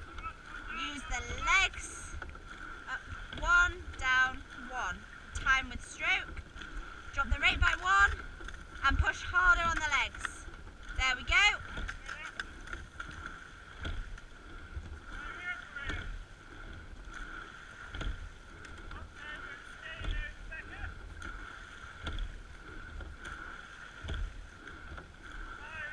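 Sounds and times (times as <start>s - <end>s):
oars knocking: 0.0s - 25.9s
water rushing past hull: 0.0s - 25.9s.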